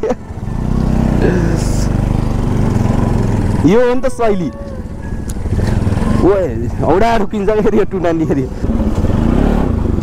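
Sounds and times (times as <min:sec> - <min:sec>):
motorcycle engine running: 0:00.0 - 0:10.0
second motorcycle alongside: 0:00.0 - 0:10.0.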